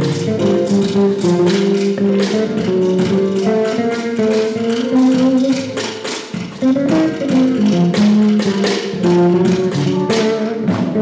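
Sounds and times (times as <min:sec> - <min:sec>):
drum kit strokes: 0:00.0 - 0:11.0
guitar: 0:00.0 - 0:11.0.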